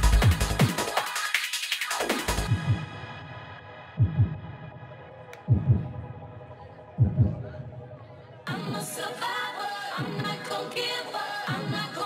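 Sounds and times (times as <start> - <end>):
deep kick drum thumps: 2.5 - 3.0, 4.0 - 4.7, 5.4 - 6.1, 7.0 - 7.6.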